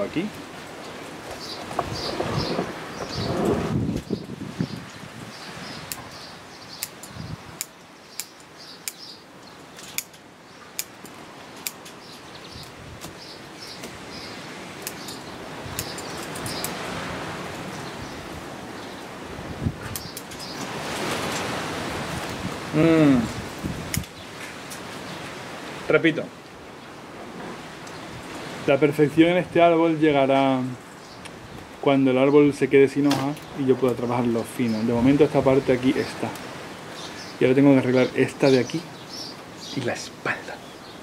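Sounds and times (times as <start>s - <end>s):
birds chirping faintly: 0.0s - 41.0s
foliage rustling: 0.0s - 41.0s.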